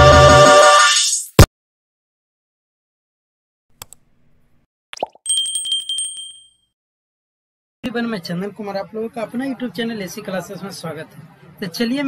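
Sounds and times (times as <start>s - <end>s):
bell ding: 5.3s - 6.7s.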